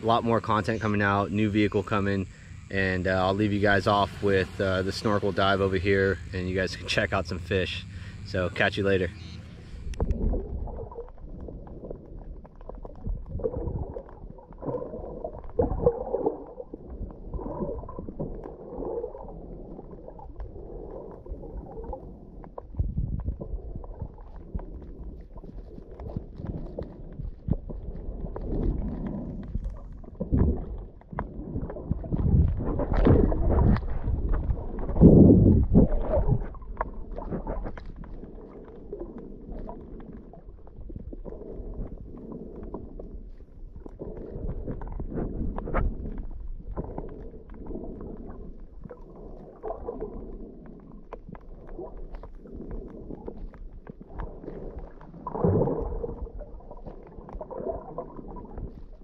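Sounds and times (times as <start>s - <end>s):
muffled underwater gurgling: 0.0s - 59.0s.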